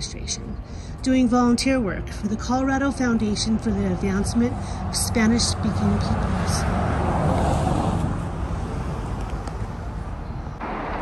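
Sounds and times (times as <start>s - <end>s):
road traffic rumble: 0.0s - 11.0s
wind buffeting microphone: 4.0s - 10.6s.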